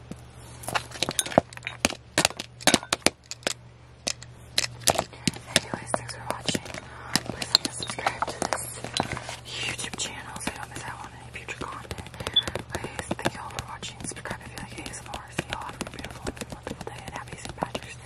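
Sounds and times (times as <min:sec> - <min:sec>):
low steady hum: 0:00.0 - 0:18.0
fingertips tapping a card: 0:04.1 - 0:18.0
person whispering: 0:05.1 - 0:08.8, 0:09.4 - 0:18.0.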